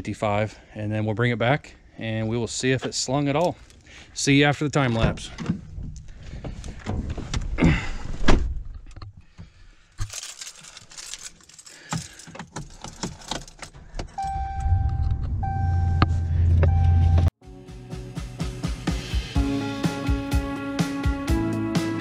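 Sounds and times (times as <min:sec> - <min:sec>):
keys jangling and clicking: 0:10.0 - 0:14.2
truck engine starting and rumbling: 0:12.7 - 0:17.4
dashboard warning chime: 0:14.1 - 0:17.3.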